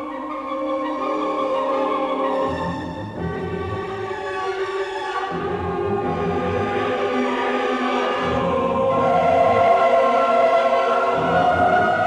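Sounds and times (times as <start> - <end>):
choir with orchestra: 0.0 - 12.0.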